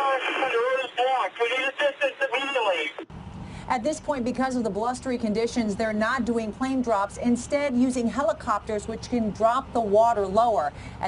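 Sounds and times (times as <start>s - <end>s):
voice over two-way radio: 0.0s - 3.1s.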